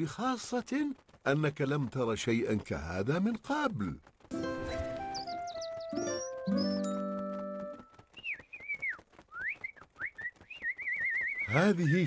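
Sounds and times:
whistled bird chirps: 0:04.8 - 0:07.0, 0:08.1 - 0:12.0.

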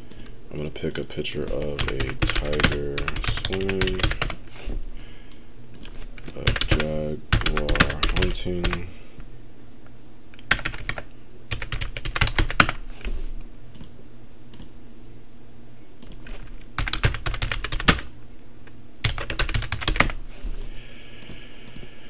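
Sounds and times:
computer keyboard typing: 0:00.1 - 0:04.4, 0:05.8 - 0:08.8, 0:10.4 - 0:12.8, 0:16.0 - 0:18.1, 0:19.0 - 0:20.2.

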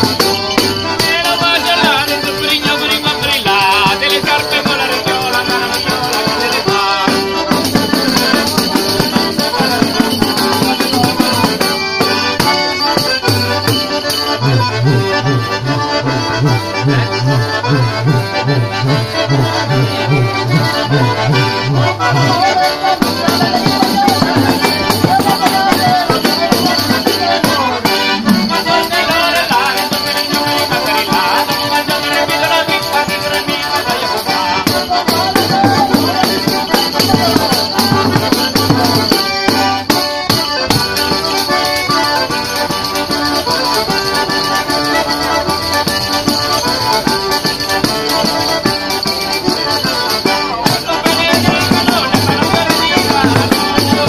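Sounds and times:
tambourines jingling: 0:00.0 - 0:07.0, 0:19.5 - 0:54.0
button accordion folk tune: 0:00.0 - 0:54.0.

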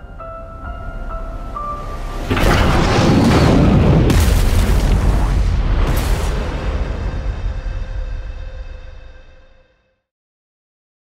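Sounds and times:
sharp hit: 0:02.2 - 0:09.7
deep boom: 0:02.3 - 0:09.7.

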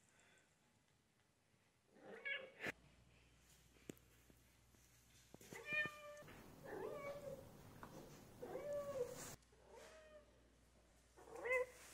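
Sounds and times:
cat meowing: 0:05.6 - 0:07.5, 0:08.4 - 0:09.2.

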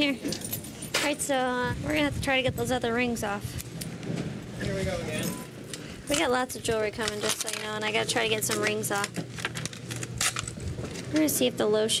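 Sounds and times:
plastic bags rustling: 0:05.6 - 0:11.3.

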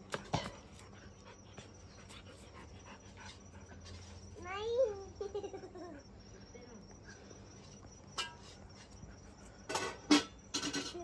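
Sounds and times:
dog panting softly: 0:00.8 - 0:04.3.

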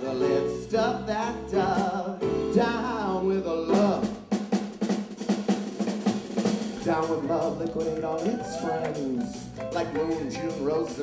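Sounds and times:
bass notes: 0:00.0 - 0:04.3, 0:06.8 - 0:11.0
drum fill: 0:03.7 - 0:11.0.

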